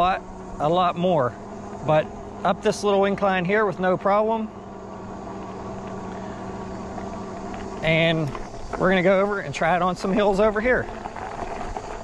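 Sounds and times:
electric bike motor hum: 0:00.0 - 0:12.0.

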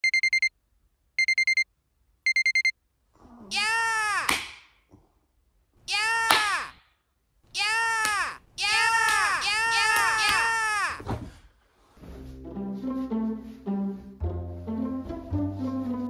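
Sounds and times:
electronic alarm beeping: 0:00.0 - 0:00.5, 0:01.2 - 0:01.6, 0:02.3 - 0:02.7
loud shouted vocal calls: 0:03.5 - 0:04.3, 0:05.9 - 0:06.8, 0:07.5 - 0:11.0.

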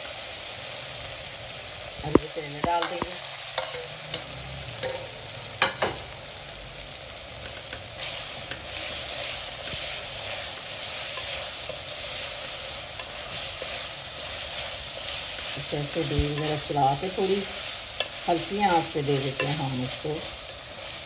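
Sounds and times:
vegetables sizzling in a pot: 0:00.0 - 0:21.0.

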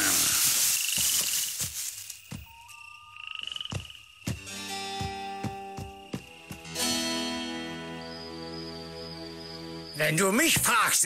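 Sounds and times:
cricket-like chirping trills: 0:00.0 - 0:11.0.

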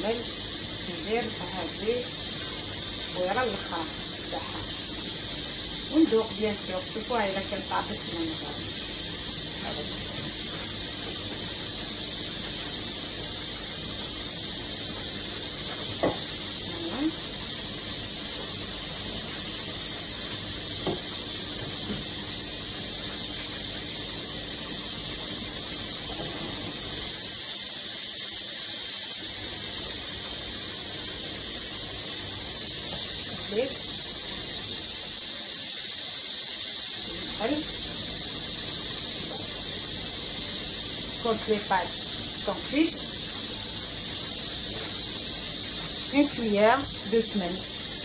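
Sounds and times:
steam hissing from pots: 0:00.0 - 0:48.0.

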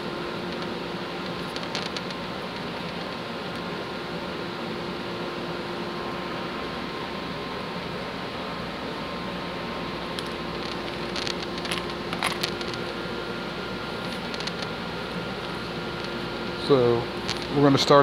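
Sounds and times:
background hum and hiss: 0:00.0 - 0:18.0.

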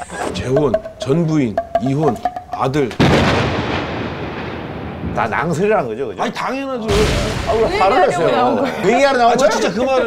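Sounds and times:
explosion boom: 0:03.0 - 0:05.7, 0:06.9 - 0:07.9.

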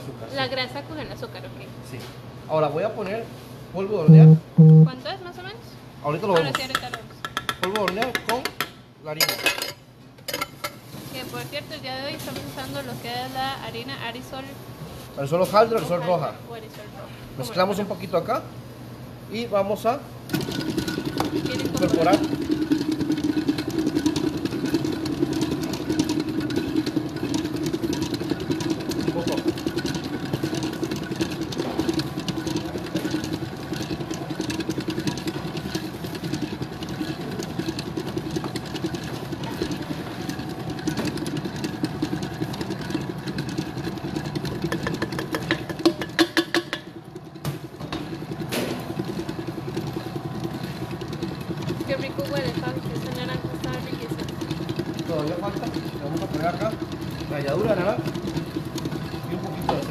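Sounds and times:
electric mixer beating batter: 0:20.3 - 0:59.9
mixer clicks: 0:20.3 - 0:59.9.

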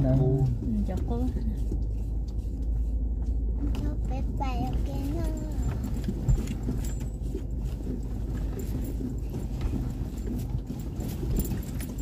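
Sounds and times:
knocks and rattles over bumps: 0:00.0 - 0:12.0
low rumble of engine and tyres: 0:00.0 - 0:12.0.

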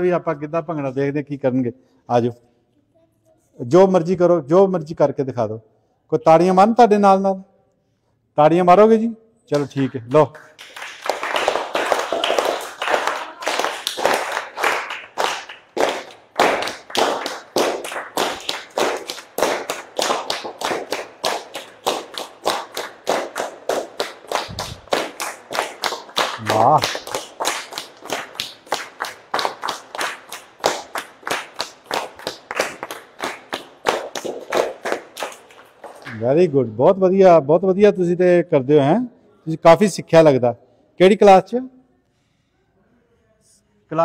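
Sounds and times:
children clapping in rhythm: 0:09.5 - 0:36.2.

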